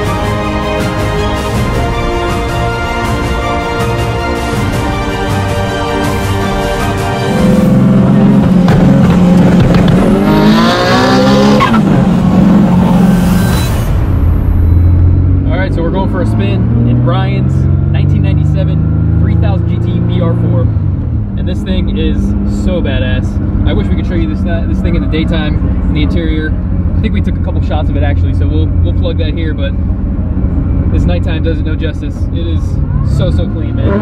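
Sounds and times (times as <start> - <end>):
car engine accelerating hard: 0.0 - 34.0.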